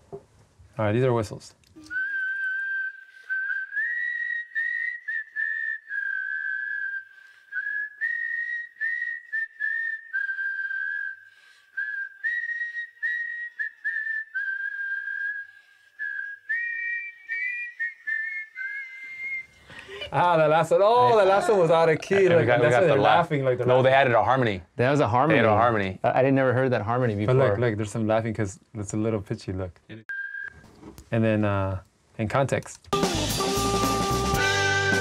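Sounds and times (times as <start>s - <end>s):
whistled harmony line: 1.8s - 19.6s, 30.1s - 30.7s
whistled melody: 1.8s - 19.6s, 30.1s - 30.6s, 33.0s - 35.0s.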